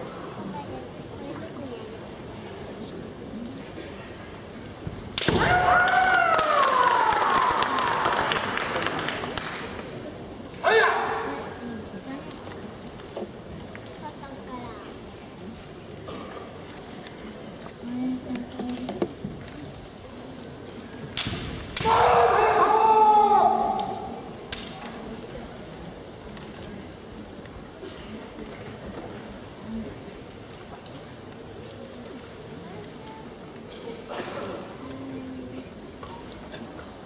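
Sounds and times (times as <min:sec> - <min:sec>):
loud drawn-out shout: 0:05.4 - 0:08.2, 0:10.6 - 0:11.4, 0:21.8 - 0:24.3.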